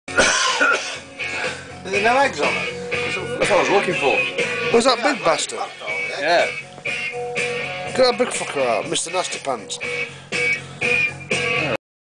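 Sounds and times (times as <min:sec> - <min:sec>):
loud harsh cough: 0:00.1 - 0:01.6
rock music: 0:00.1 - 0:11.8
man speaking: 0:01.8 - 0:06.6, 0:07.9 - 0:09.9.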